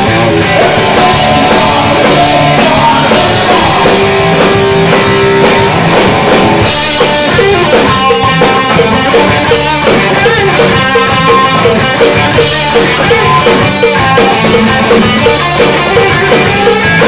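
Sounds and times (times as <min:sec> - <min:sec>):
bass guitar: 0:00.0 - 0:17.0
distorted electric guitar: 0:00.0 - 0:17.0
drum kit: 0:00.0 - 0:17.0.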